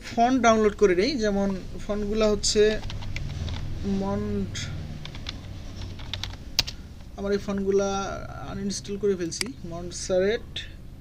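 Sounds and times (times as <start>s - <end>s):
keyboard key clicks: 5.0s - 6.8s.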